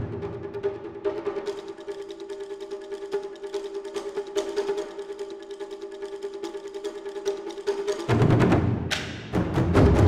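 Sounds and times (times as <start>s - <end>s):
rapid ticking percussion: 0.0s - 10.0s.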